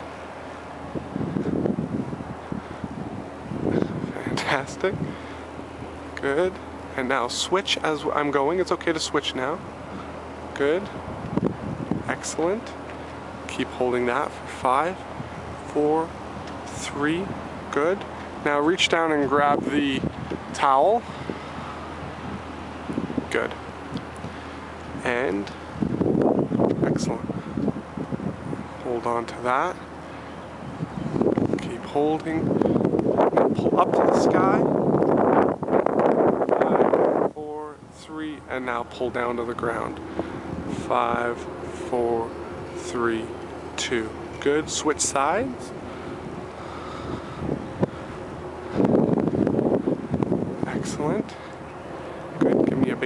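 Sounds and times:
wind on microphone: 0:00.0 - 0:09.0, 0:09.6 - 0:53.0
distant traffic hum: 0:00.0 - 0:53.0.

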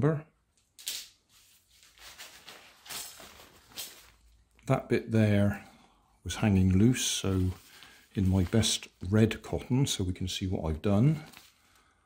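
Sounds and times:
fabric rustling: 0:00.8 - 0:04.5, 0:07.1 - 0:09.3
fabric swishes: 0:01.3 - 0:04.2.

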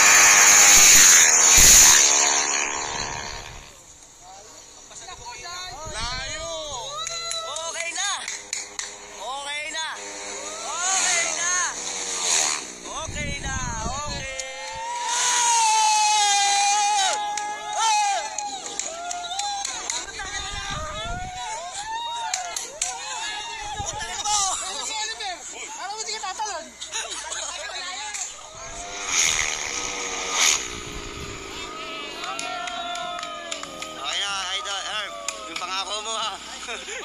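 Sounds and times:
spectators shouting: 0:00.0 - 0:03.8, 0:10.2 - 0:12.4, 0:14.2 - 0:26.8, 0:28.0 - 0:37.0
racing motorcycle engine passing: 0:09.9 - 0:13.0, 0:28.4 - 0:34.5.

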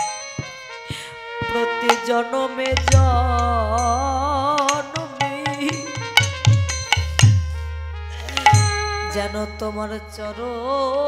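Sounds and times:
percussion strikes: 0:00.0 - 0:10.2
harmonium chords: 0:00.0 - 0:11.0
person singing: 0:00.9 - 0:07.3, 0:08.1 - 0:11.0.

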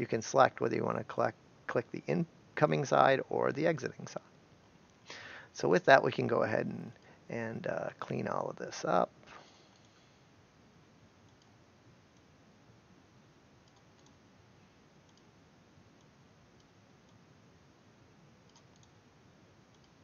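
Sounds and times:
room hiss: 0:00.0 - 0:20.0
computer mouse clicks: 0:11.3 - 0:12.3, 0:13.6 - 0:14.2, 0:15.0 - 0:15.3, 0:18.5 - 0:19.0, 0:19.7 - 0:20.0.

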